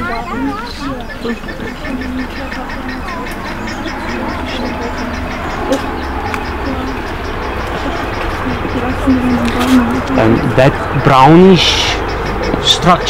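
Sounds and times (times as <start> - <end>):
faint distant voices: 0.0 - 13.0
low constant rumble: 0.0 - 13.0.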